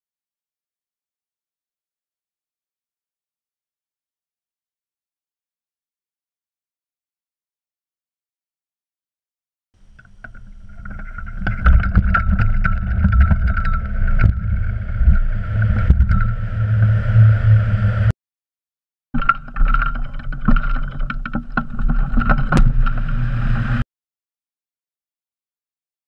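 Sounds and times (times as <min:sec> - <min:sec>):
small knocks and rattles: 0:09.8 - 0:16.5, 0:19.2 - 0:23.3
wind rushing over microphone: 0:10.5 - 0:18.1.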